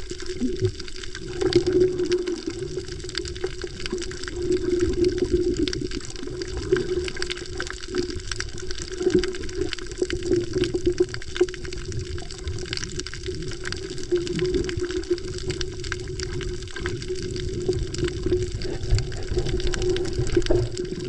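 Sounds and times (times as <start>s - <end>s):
underwater rushing water: 0.0s - 21.0s.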